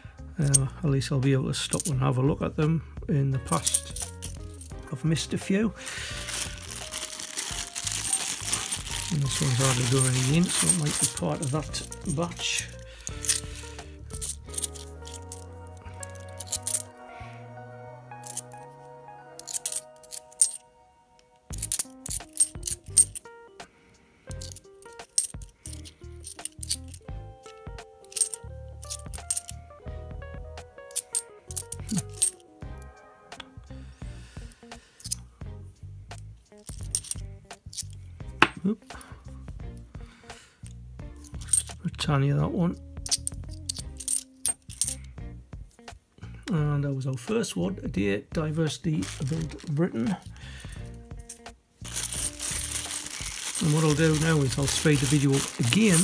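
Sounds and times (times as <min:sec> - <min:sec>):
background music: 0:00.0 - 0:56.0
coins clinking: 0:00.4 - 0:00.6, 0:01.7 - 0:01.9, 0:03.4 - 0:16.9, 0:18.2 - 0:18.6, 0:19.4 - 0:20.6, 0:21.5 - 0:23.2, 0:24.3 - 0:27.0, 0:28.0 - 0:29.6, 0:30.9 - 0:32.4, 0:36.6 - 0:37.9, 0:41.2 - 0:41.8, 0:43.1 - 0:45.0, 0:49.0 - 0:50.2, 0:51.3 - 0:56.0.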